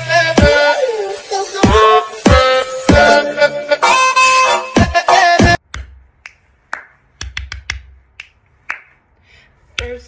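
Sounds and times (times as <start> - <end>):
fingers snapping: 5.6 - 8.9.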